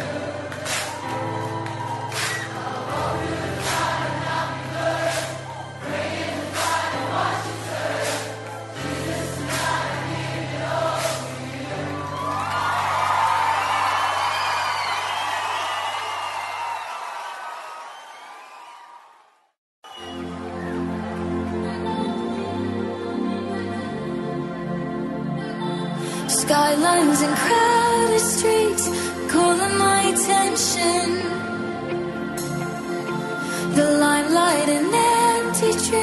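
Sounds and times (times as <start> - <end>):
crowd cheering and whistling: 0.0 - 10.0, 10.9 - 21.6
crowd singing: 0.0 - 12.4, 25.6 - 36.0.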